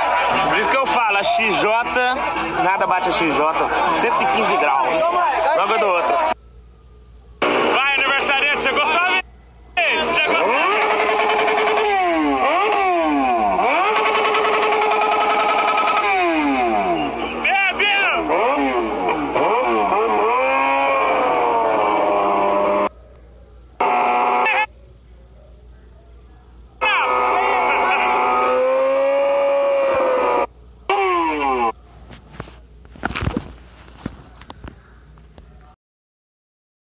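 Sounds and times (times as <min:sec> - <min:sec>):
motorcycle engine revving: 0:07.4 - 0:08.7, 0:10.1 - 0:22.9, 0:23.8 - 0:24.7, 0:26.8 - 0:31.8.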